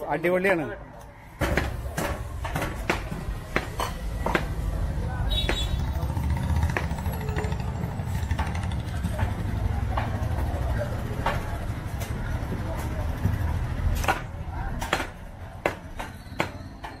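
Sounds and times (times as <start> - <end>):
knife chopping meat on wooden block: 2.7 - 4.6.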